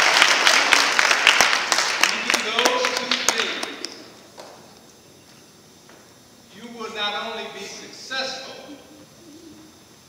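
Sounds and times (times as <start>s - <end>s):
audience applause: 0.0s - 4.0s.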